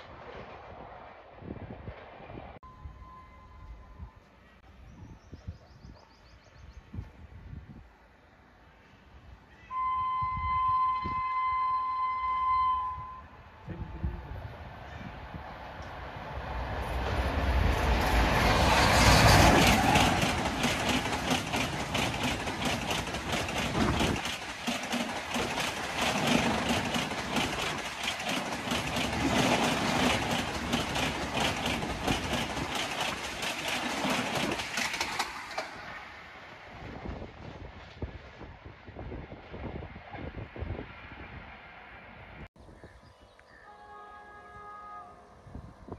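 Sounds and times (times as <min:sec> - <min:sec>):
train passing rush: 0:00.0 - 0:42.5
locomotive horn blast: 0:09.7 - 0:14.1, 0:43.6 - 0:45.9
wheels clattering over rail joints: 0:18.2 - 0:36.4.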